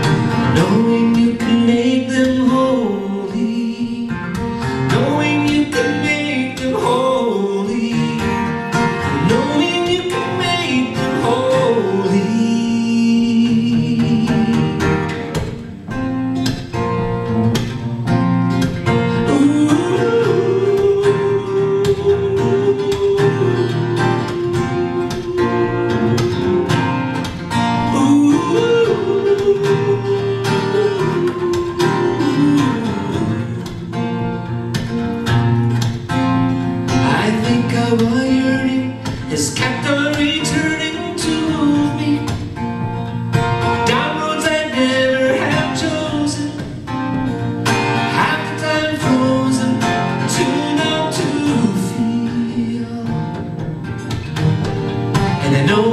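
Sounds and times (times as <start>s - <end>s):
man singing: 0.0s - 15.6s, 18.8s - 35.0s, 36.9s - 54.2s, 55.2s - 55.9s
acoustic guitar strumming: 0.0s - 55.9s.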